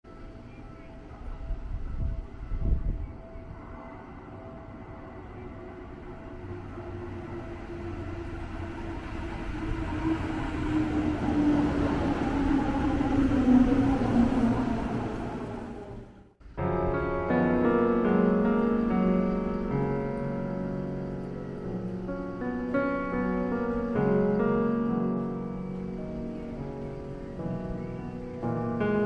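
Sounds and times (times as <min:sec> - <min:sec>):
electric train arriving: 0:00.1 - 0:29.0.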